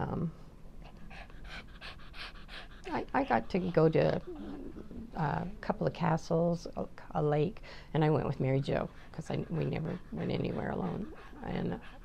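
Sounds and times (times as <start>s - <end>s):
small dog panting: 0.8s - 5.7s, 8.1s - 12.0s.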